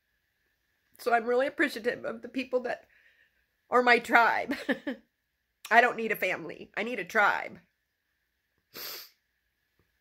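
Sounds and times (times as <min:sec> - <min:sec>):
woman sniffing: 0:08.7 - 0:09.2.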